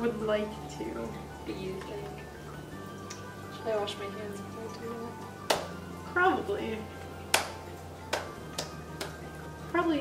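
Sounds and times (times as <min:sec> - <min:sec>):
upbeat background music: 0:00.0 - 0:10.0
hands clapping: 0:05.4 - 0:05.8, 0:07.3 - 0:09.3.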